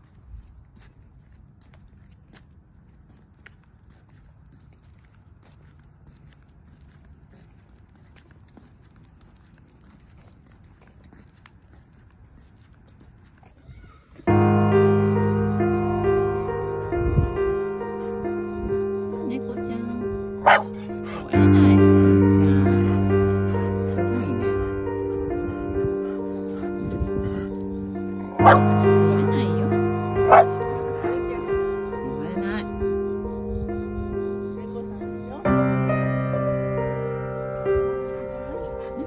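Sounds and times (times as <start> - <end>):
footsteps on paved path: 0.0 - 39.0
background music: 14.3 - 39.0
dog barking: 20.4 - 21.3, 28.3 - 29.2, 30.2 - 31.8.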